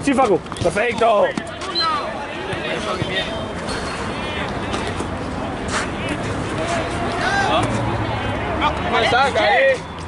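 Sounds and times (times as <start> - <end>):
background hubbub: 0.0 - 10.0
players shouting: 0.7 - 10.0.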